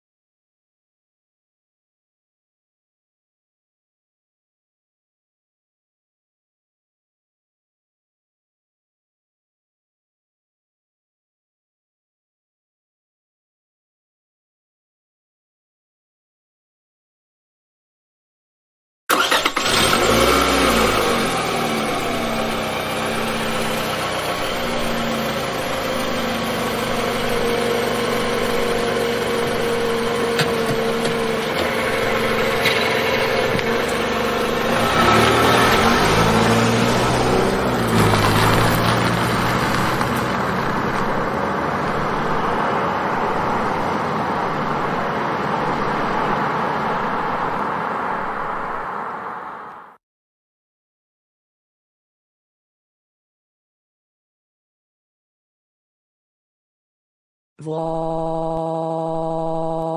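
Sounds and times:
car engine revving: 0:19.1 - 0:49.9.

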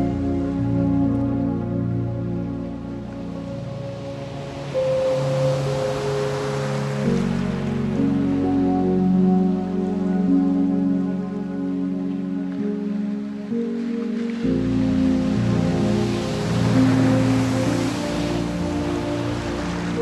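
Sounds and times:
layered synthesizer chords: 0:00.0 - 0:20.0
rushing water: 0:00.0 - 0:20.0.

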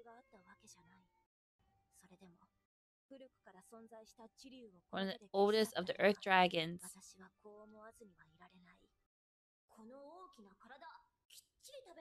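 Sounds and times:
woman speaking quietly: 0:05.0 - 0:07.0.

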